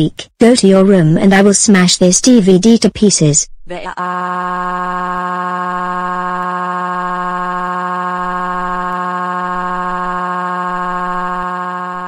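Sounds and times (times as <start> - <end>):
synthetic voice holding uh: 3.7 - 12.0.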